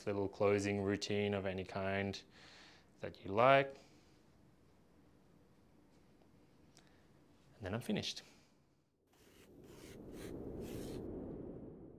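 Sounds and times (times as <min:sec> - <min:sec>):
bright swish: 0:09.2 - 0:11.7
low rumble: 0:09.5 - 0:11.9.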